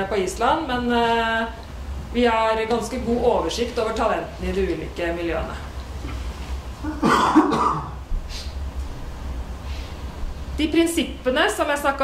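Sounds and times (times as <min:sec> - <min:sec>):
person coughing: 0:06.8 - 0:08.0.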